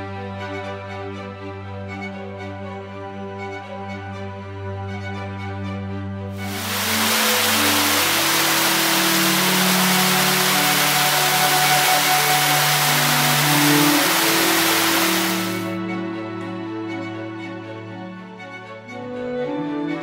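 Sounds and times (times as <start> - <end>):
background music: 0.0 - 20.0
stream rushing over rocks: 6.4 - 15.7.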